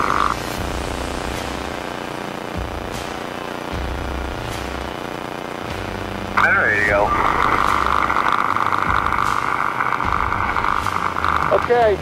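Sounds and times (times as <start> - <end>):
piston engine and propeller drone: 0.0 - 12.0
radio static: 0.0 - 12.0.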